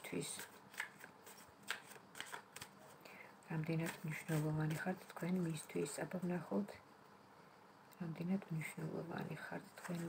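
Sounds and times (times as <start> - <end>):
cards being shuffled: 0.0 - 3.0, 3.7 - 5.0, 9.8 - 10.0.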